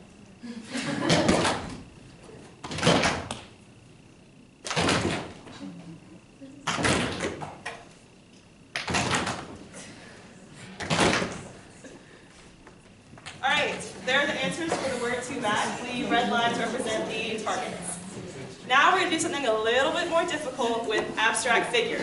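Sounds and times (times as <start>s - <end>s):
people slapping hands on tables: 1.0s - 1.8s, 2.6s - 3.5s, 4.6s - 5.6s, 6.6s - 7.8s, 8.7s - 9.6s, 10.8s - 11.6s.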